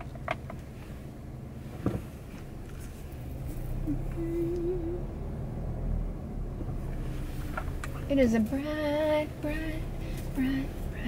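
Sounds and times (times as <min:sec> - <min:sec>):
car interior rumble: 0:00.0 - 0:11.0.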